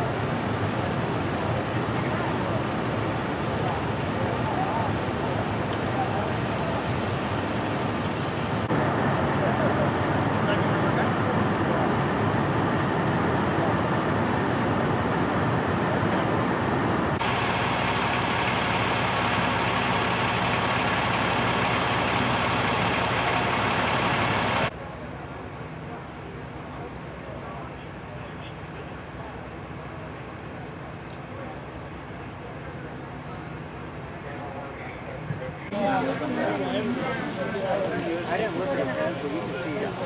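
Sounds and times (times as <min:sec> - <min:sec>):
diesel engine running: 0:00.0 - 0:40.0
indistinct voices: 0:32.6 - 0:40.0.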